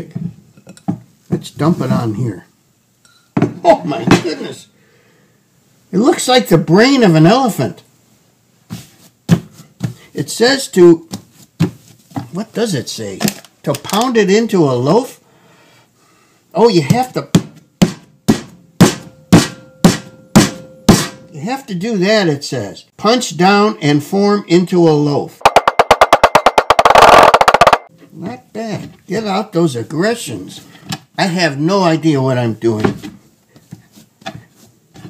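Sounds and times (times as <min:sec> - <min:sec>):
hands rubbing bread dough: 0:08.6 - 0:10.1, 0:11.0 - 0:12.6, 0:33.5 - 0:35.0
fist thumping dough on wood: 0:17.3 - 0:21.2.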